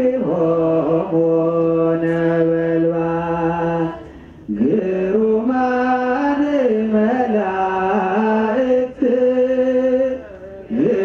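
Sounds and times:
man chanting a hymn: 0.0s - 11.0s.

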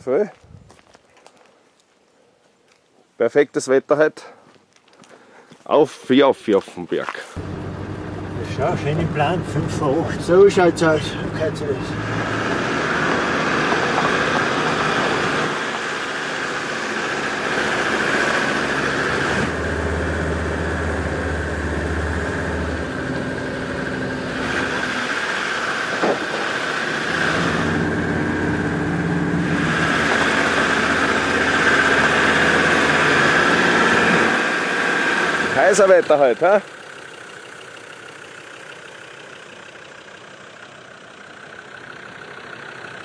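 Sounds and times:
off-road vehicle engine: 6.2s - 43.0s.

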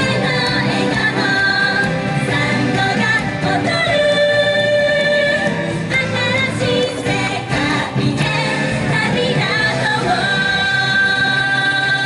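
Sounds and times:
female vocal group singing: 0.0s - 12.0s
upbeat pop backing music: 0.0s - 12.0s.

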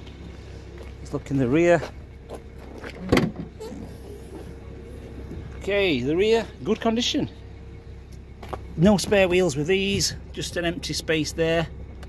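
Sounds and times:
car boot latch clunk: 2.9s - 3.6s.

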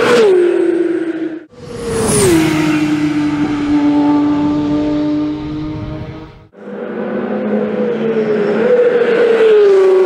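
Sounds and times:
sports car passing by: 1.5s - 10.0s.

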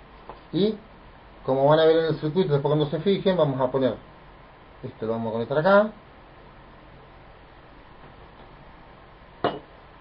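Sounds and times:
faint room noise: 0.0s - 10.0s.

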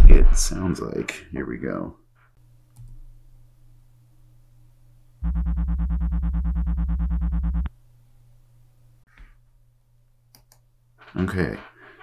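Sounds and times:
low buzzy throbbing tone: 5.2s - 7.7s.

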